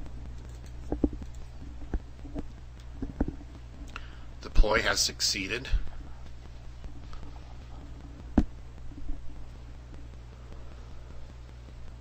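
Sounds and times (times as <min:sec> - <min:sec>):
low electrical hum: 0:00.0 - 0:12.0
keyboard and mouse clicks: 0:00.4 - 0:03.4.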